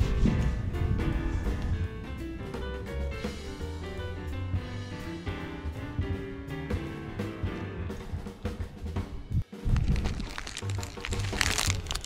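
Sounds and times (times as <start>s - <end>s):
sharp crackling: 9.6s - 12.0s.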